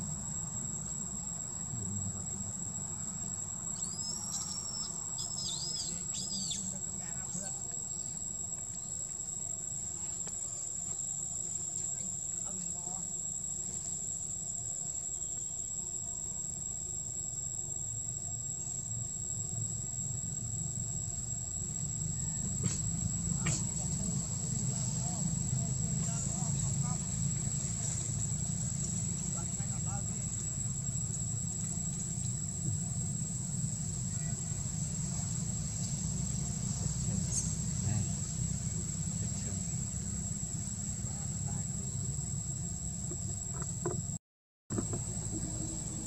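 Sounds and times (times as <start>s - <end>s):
insects droning: 0.0s - 46.0s
low background rumble: 15.6s - 46.0s.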